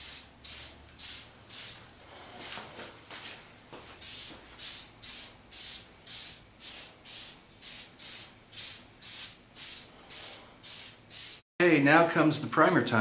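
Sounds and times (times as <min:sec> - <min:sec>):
aerosol can spraying hisses: 0:00.0 - 0:01.8, 0:04.0 - 0:11.4.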